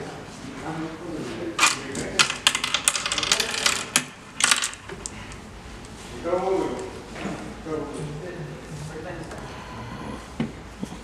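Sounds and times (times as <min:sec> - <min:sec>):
game counters clicking on wooden board: 0:02.2 - 0:04.8.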